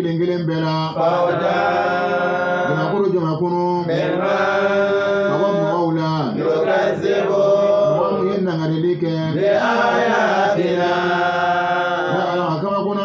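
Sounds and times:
man chanting into a microphone: 0:00.0 - 0:06.5, 0:07.5 - 0:09.7, 0:11.6 - 0:13.0.

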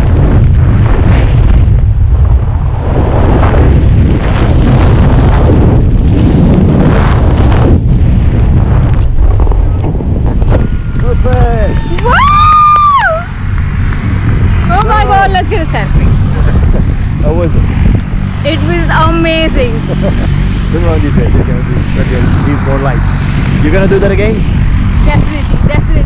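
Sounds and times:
low rumble: 0:00.0 - 0:26.0
people whooping and exclaiming: 0:10.7 - 0:13.3.

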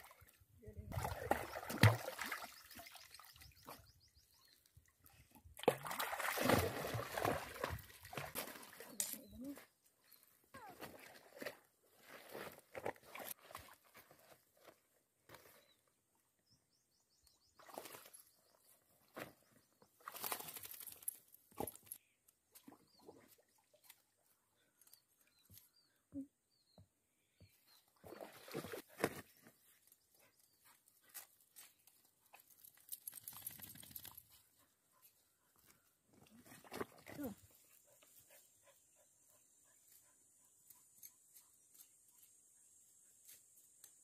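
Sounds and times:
sloshing steps in water: 0:00.9 - 0:03.2, 0:05.6 - 0:09.0.

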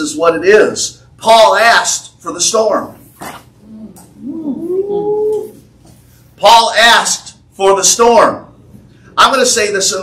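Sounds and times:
person's rising vocal exclamation: 0:03.7 - 0:05.6.

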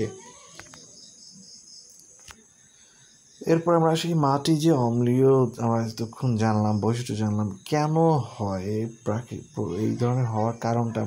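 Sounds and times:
insect chirping: 0:00.0 - 0:11.0.

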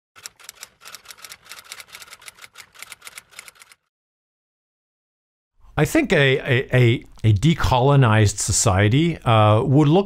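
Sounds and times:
typewriter keys clacking: 0:00.2 - 0:03.8.

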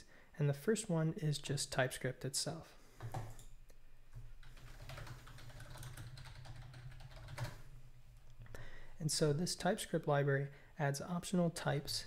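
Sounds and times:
typing on computer keyboard: 0:04.4 - 0:07.6.

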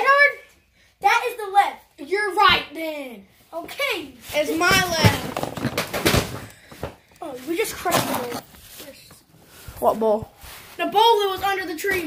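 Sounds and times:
child's voice: 0:00.0 - 0:05.4, 0:07.2 - 0:09.2, 0:10.8 - 0:12.0
knocking and rustling: 0:04.4 - 0:09.3.

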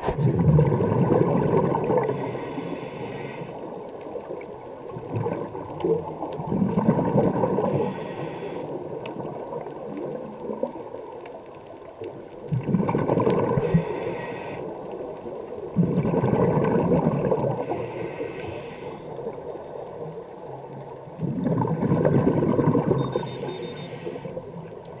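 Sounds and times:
exhaled bubbles gurgling: 0:00.0 - 0:25.0
regulator air hiss: 0:02.2 - 0:03.6, 0:07.7 - 0:08.8, 0:13.6 - 0:14.8, 0:17.7 - 0:19.1, 0:23.2 - 0:24.4.

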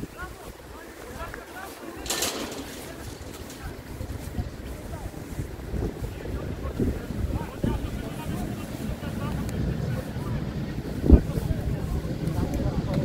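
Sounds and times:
distant voices calling: 0:00.0 - 0:13.0
wind buffeting microphone: 0:00.0 - 0:13.0.

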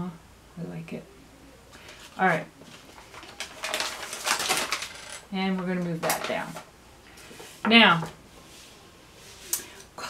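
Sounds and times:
paper rustling and crinkling: 0:01.7 - 0:07.6.

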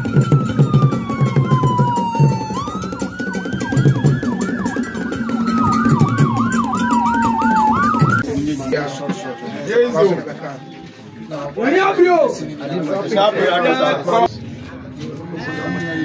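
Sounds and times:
pulsing bass beat: 0:00.0 - 0:08.3
fast yelping siren: 0:00.0 - 0:12.0
police siren wailing: 0:00.0 - 0:12.4.

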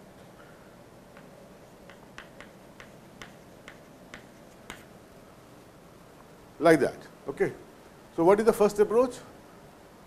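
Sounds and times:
chalk tapping on chalkboard: 0:01.1 - 0:04.9.

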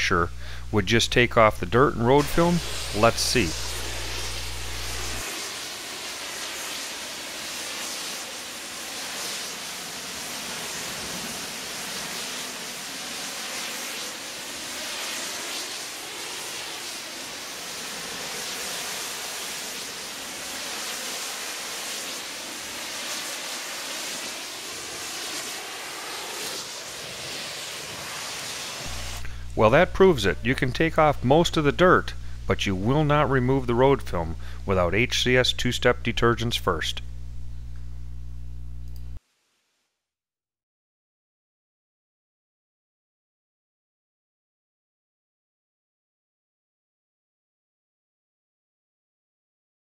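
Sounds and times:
pressure washer spray hissing: 0:02.1 - 0:31.1.

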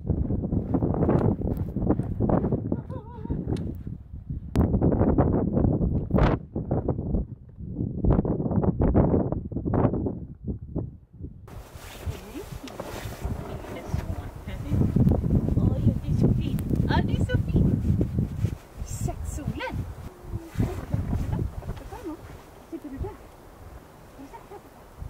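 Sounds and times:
gusty wind buffeting microphone: 0:00.0 - 0:25.0
hissing rush of wind: 0:11.5 - 0:25.0.

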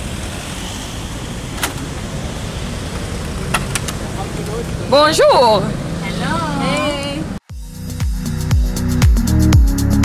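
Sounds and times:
car engine idling: 0:00.0 - 0:07.9.

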